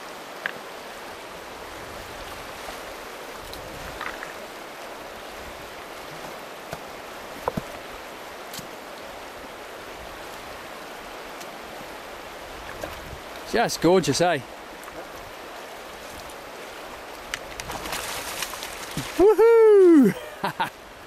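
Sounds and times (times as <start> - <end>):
water rushing over rocks: 0.0 - 21.0.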